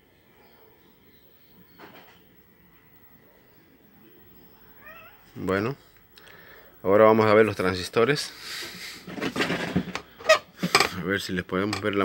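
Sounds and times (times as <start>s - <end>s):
quiet room noise: 0.0s - 12.0s
cat meowing: 4.8s - 5.2s.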